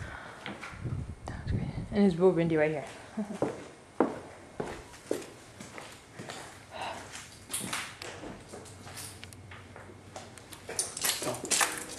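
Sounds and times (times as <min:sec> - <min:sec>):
footsteps: 0:02.8 - 0:11.9.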